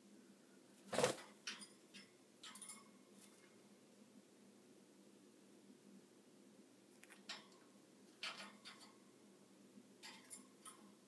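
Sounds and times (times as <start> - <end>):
light clicks in wire cage: 1.5 - 2.9, 10.0 - 11.0.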